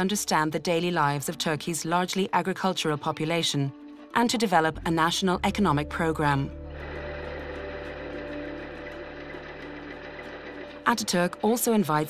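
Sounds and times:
machine humming: 6.6s - 11.2s.

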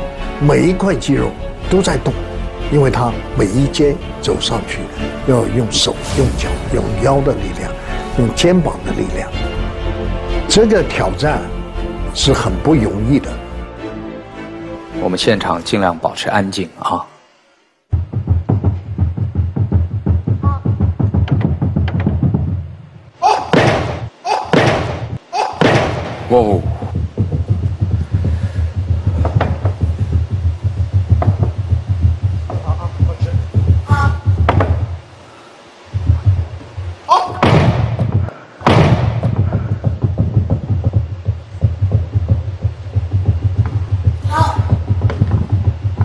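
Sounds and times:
low throbbing suspense sound: 17.9s - 22.7s, 26.3s - 35.1s, 35.8s - 37.1s, 38.9s - 46.0s
background music with low beat: 17.9s - 23.0s, 23.6s - 35.0s, 35.9s - 46.0s
sudden thuds: 17.9s - 35.0s, 36.0s - 46.0s
forceful breathy exhalations: 27.9s - 29.4s.

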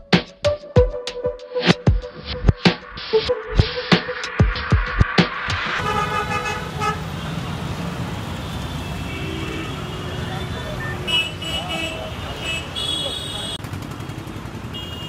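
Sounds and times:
music beat: 0.0s - 6.1s
car horns honking: 5.8s - 7.5s, 8.3s - 15.0s
traffic engines running: 5.8s - 15.0s.

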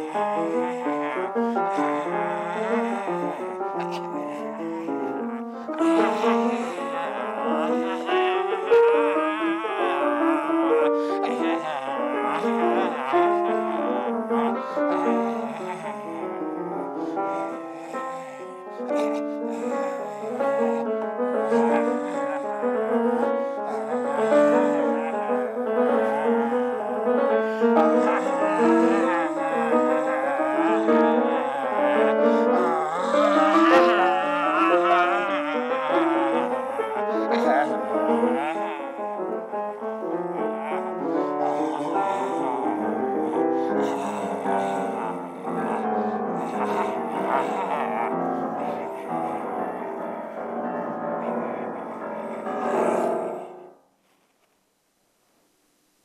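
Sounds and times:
solo jazz piano: 0.0s - 53.8s.

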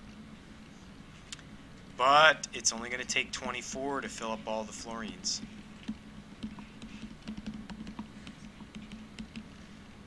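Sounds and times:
steady low hum: 0.0s - 10.0s
stylus tapping tablet screen: 4.7s - 9.5s.

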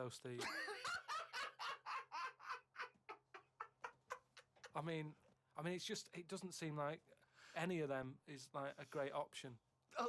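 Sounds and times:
man laughing in high bursts: 0.4s - 4.6s.

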